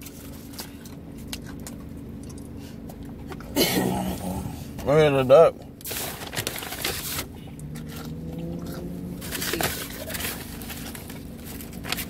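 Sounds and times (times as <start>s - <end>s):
paper bag rustling: 5.8s - 8.2s, 9.1s - 12.0s.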